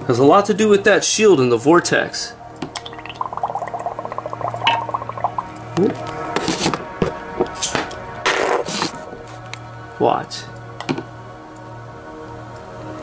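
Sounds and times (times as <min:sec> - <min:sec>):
background music: 0:02.3 - 0:13.0
torch flame bubbling under water: 0:02.8 - 0:05.6.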